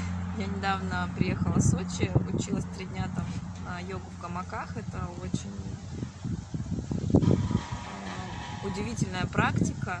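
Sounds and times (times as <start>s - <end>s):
car passing: 0.0s - 9.9s.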